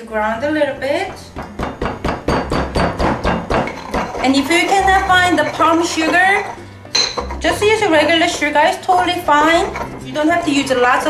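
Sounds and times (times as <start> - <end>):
pestle pounding in stone mortar: 1.0 - 10.1.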